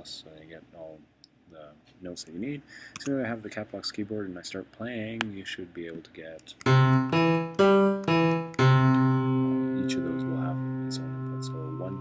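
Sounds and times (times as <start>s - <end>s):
piano chords: 6.6s - 12.0s.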